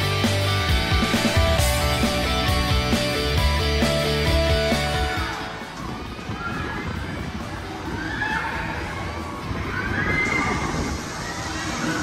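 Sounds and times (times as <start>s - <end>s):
children shrieking: 5.9s - 12.0s.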